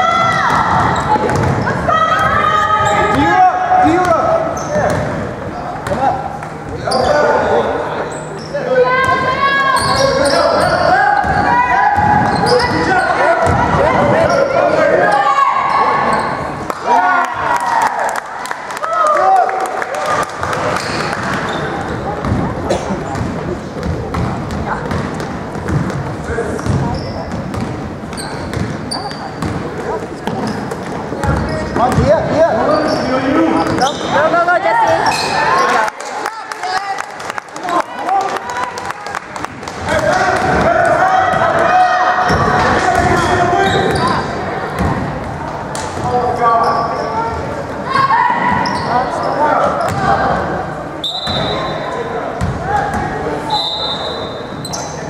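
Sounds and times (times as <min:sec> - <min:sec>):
basketball bouncing: 0:00.3 - 0:01.7, 0:04.8 - 0:05.2, 0:13.4 - 0:13.7, 0:22.2 - 0:22.6, 0:23.2 - 0:28.8, 0:29.4 - 0:32.2, 0:52.4 - 0:52.6
voices shouting: 0:47.8 - 0:50.4.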